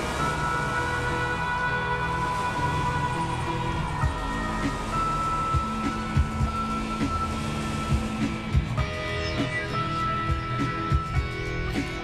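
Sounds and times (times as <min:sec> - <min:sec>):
sustained electronic tones: 0:00.0 - 0:11.7.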